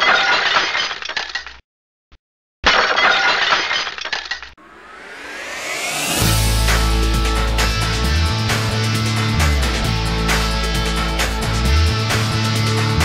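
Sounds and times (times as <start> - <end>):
glass shattering: 0.0 - 1.4, 2.7 - 4.3
rising whoosh: 4.6 - 9.9.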